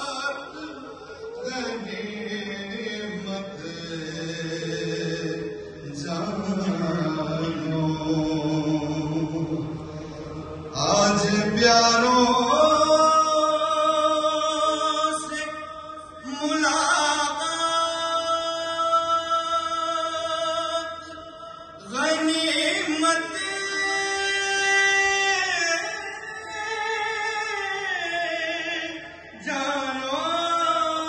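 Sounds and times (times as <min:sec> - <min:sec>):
person chanting a lament: 0:00.0 - 0:31.0.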